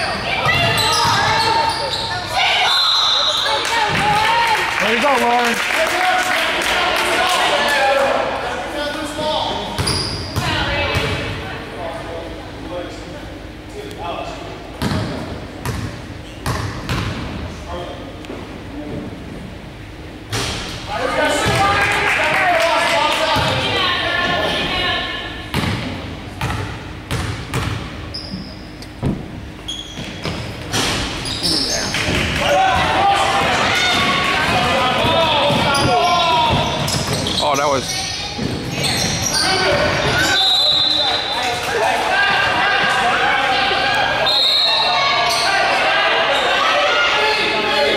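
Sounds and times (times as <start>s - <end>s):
sneakers squeaking: 0.0s - 4.1s, 9.1s - 11.4s, 14.4s - 17.4s, 23.4s - 41.6s, 42.3s - 46.6s
voices in a hall: 0.0s - 47.9s.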